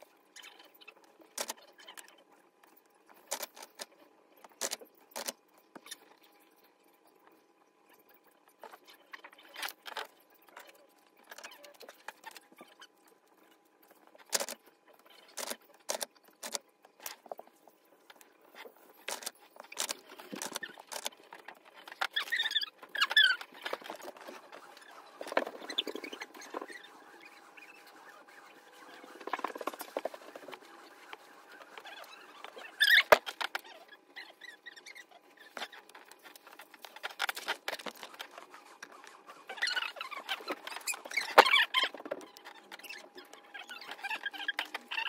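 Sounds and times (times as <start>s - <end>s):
paper sheets rustling: 35.6s - 41.5s.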